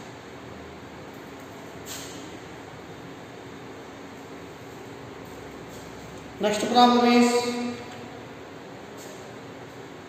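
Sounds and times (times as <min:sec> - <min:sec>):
room tone hiss and hum: 0:00.0 - 0:10.0.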